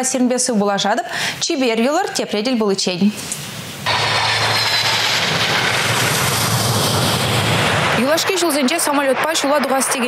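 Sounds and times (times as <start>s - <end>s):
jet engines running: 3.3s - 10.0s.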